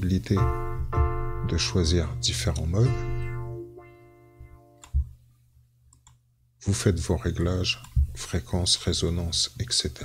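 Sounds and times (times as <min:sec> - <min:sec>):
held synthesizer note: 0:00.4 - 0:05.1.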